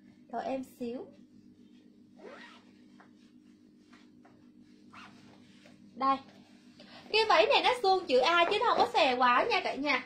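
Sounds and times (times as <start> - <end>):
steady low hum: 0.0 - 10.0
zipper being pulled: 2.2 - 2.8, 4.9 - 5.2.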